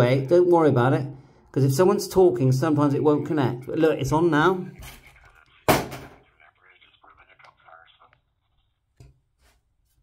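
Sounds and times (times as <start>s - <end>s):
phone knocking on desk: 5.7s - 6.2s.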